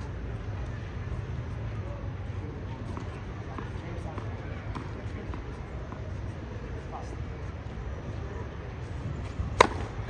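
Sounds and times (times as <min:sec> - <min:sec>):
tennis racket striking ball: 0:09.6 - 0:10.0.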